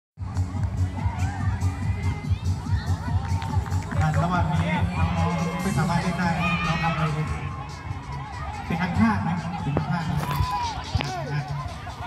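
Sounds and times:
music with pulsing bass beat: 0.2s - 12.0s.

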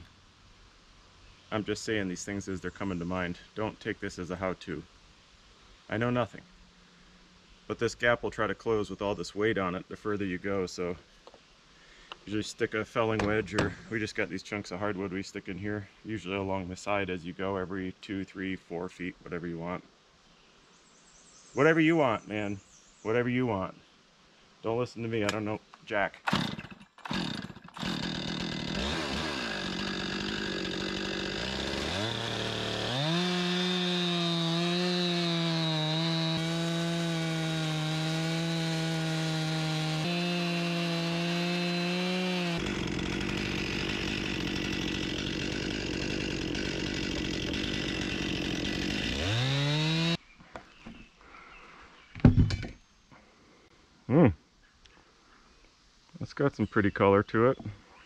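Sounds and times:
chainsaw ripping a log: 26.3s - 50.2s.

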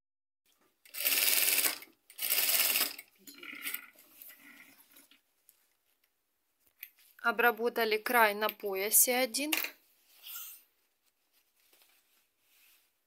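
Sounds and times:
industrial sewing machine stitching: 0.9s - 3.0s.

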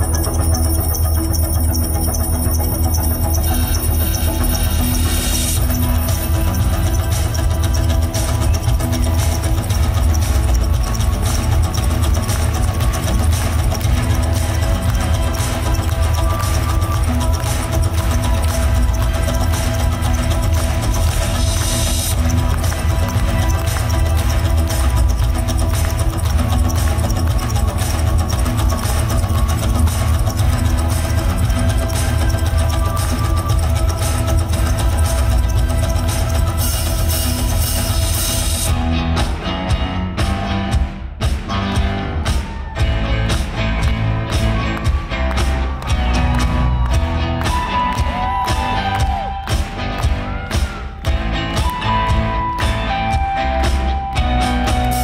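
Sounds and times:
heavy bass guitar: 2.3s - 55.0s
drum kit beat: 2.6s - 55.0s
rock band playing: 5.6s - 55.0s.

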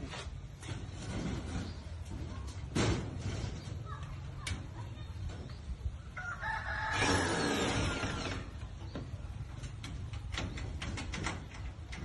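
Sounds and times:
rooster crowing: 6.2s - 7.8s.

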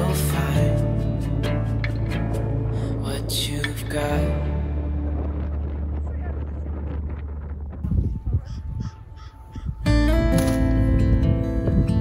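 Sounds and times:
strummed acoustic guitar music: 0.0s - 6.0s, 9.8s - 12.0s
low thumps: 3.6s - 12.0s
bird calling: 8.3s - 10.0s.

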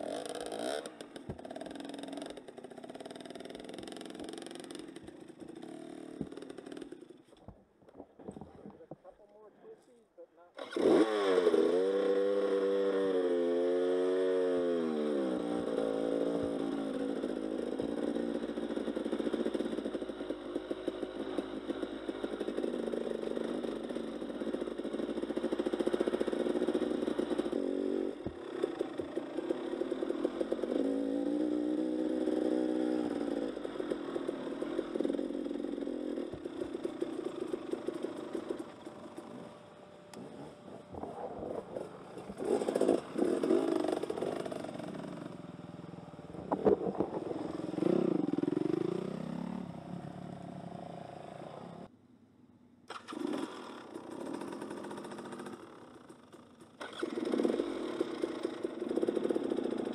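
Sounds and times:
dirt bike engine revving: 0.0s - 7.2s, 10.5s - 51.9s, 52.9s - 56.0s, 56.8s - 59.9s.

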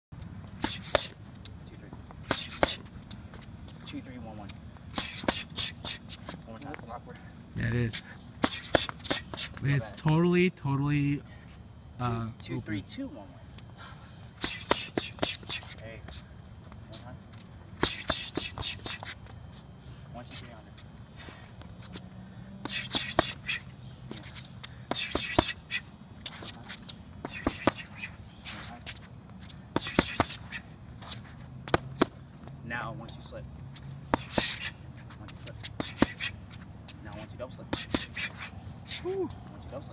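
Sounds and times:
boxing gloves hitting mitts: 0.6s - 1.2s, 2.2s - 2.9s, 4.9s - 6.4s, 8.4s - 9.6s, 14.4s - 15.7s, 17.8s - 19.1s, 22.6s - 23.6s, 24.9s - 25.6s, 26.3s - 28.0s, 29.7s - 30.5s, 31.6s - 32.2s, 34.0s - 34.7s, 35.7s - 36.3s, 37.7s - 38.4s.

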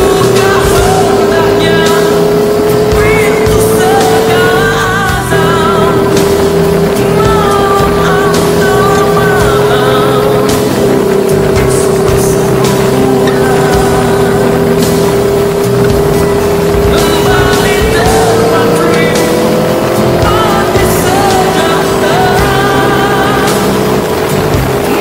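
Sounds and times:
motorcycle engine running: 0.0s - 25.0s
music with singing: 0.0s - 25.0s.

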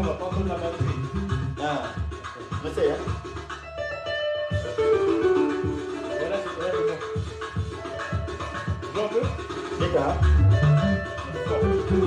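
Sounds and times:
electric bass notes: 0.0s - 1.6s, 9.8s - 12.0s
electric guitar melody: 3.6s - 9.1s, 10.1s - 12.0s.

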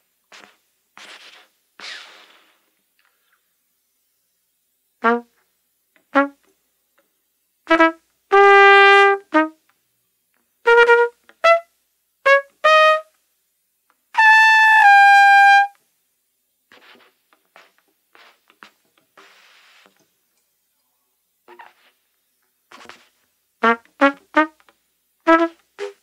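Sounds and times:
solo trumpet playing: 5.0s - 5.3s, 6.1s - 6.4s, 7.7s - 9.6s, 10.6s - 13.1s, 14.1s - 15.8s, 23.6s - 24.6s, 25.2s - 26.0s.

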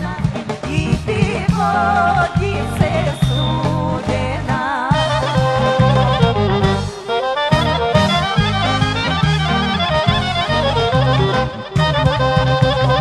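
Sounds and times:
accordion: 0.0s - 13.0s
drum rhythm: 0.0s - 13.0s
pulsing bass: 0.0s - 13.0s
clarinet playing fast melody: 2.6s - 4.3s, 4.9s - 13.0s.

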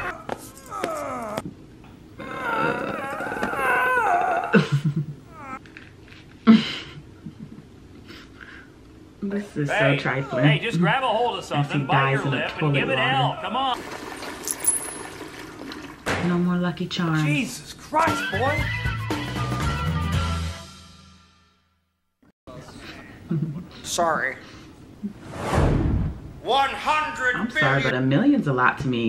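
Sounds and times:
man groaning while choked: 0.0s - 1.5s, 2.2s - 4.7s
toilet water rushing: 13.8s - 16.1s
toilet chain pulled: 14.4s - 15.8s.

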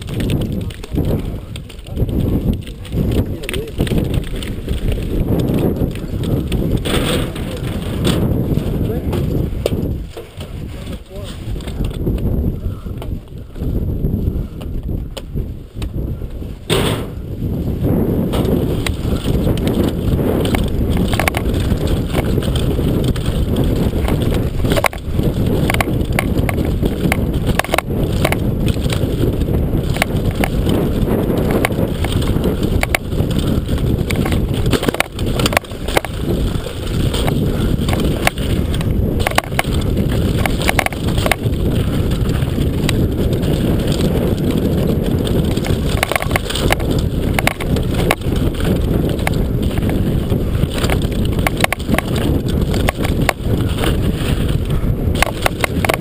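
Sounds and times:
bike rattling over bumps: 0.0s - 56.0s
mountain bike tyres rumbling: 0.0s - 56.0s
wind: 0.0s - 56.0s.

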